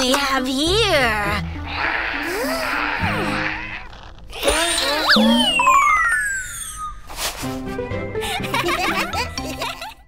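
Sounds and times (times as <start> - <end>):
background music: 0.0 - 6.2, 7.0 - 10.0
quick sliding cartoon tones: 4.8 - 7.6
long falling whistle tone: 5.1 - 7.2.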